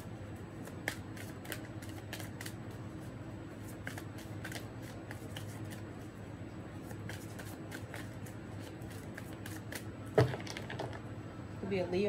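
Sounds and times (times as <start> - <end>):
cards being shuffled: 0.6 - 5.9, 6.8 - 11.0.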